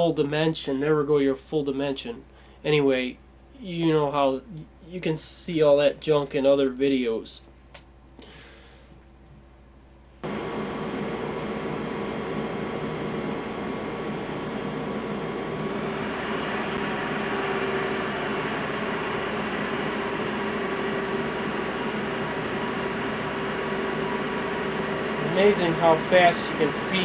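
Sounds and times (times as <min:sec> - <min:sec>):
lathe motor whine: 0:10.2 - 0:27.0.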